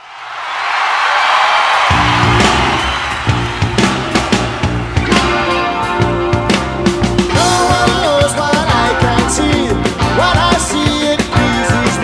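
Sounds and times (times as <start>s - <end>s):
crowd noise: 0.0s - 12.0s
rock band with drums and bass: 1.8s - 12.0s.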